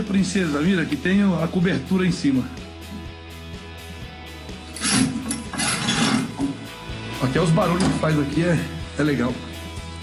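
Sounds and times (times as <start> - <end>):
background music: 0.0 - 10.0
creaking and scraping: 4.7 - 6.6.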